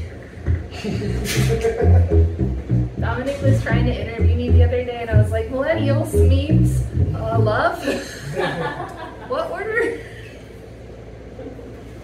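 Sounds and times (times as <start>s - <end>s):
low background hum and rumble: 0.0s - 12.0s.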